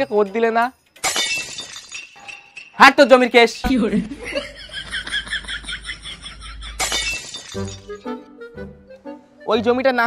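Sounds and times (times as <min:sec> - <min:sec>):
fast high chimes: 0:00.0 - 0:03.6, 0:06.8 - 0:08.0
background music: 0:00.0 - 0:10.0.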